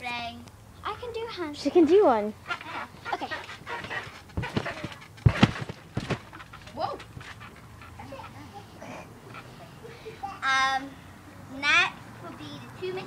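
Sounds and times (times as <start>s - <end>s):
thuds on a trampoline: 2.5s - 7.7s.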